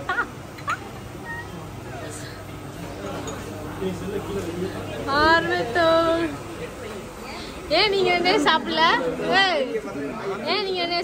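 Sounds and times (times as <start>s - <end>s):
faint restaurant chatter: 0.0s - 11.0s.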